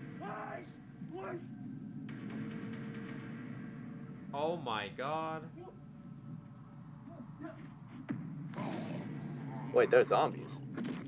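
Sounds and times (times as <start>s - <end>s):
quiet soundtrack music: 0.0s - 11.0s.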